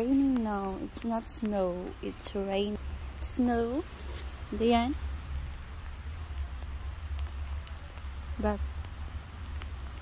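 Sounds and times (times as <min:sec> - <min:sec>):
rain hiss: 0:00.0 - 0:10.0
raindrops ticking: 0:00.0 - 0:10.0
steady low rumble: 0:00.0 - 0:10.0.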